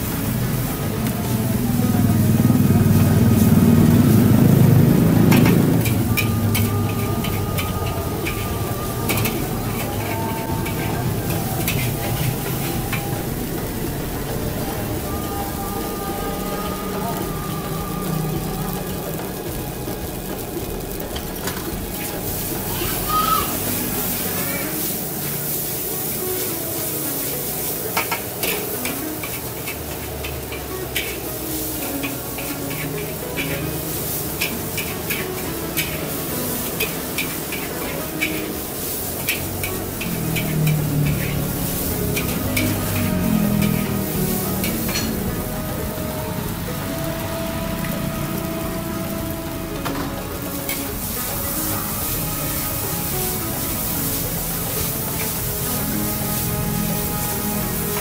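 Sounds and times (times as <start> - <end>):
rice sizzling in a wok: 0.0 - 58.0
metal spatula scraping wok: 2.7 - 58.0.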